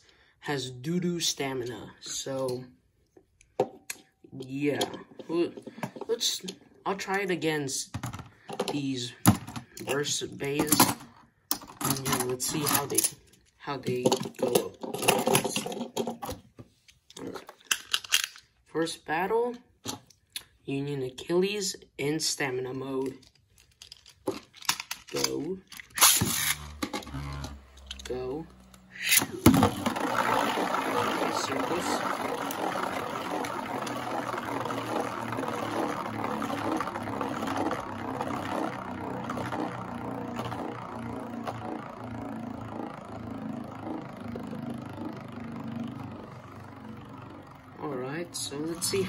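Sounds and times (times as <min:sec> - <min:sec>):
spinning tops whirring: 0:08.0 - 0:16.4, 0:24.0 - 0:49.0
spinning tops clacking: 0:23.9 - 0:49.0.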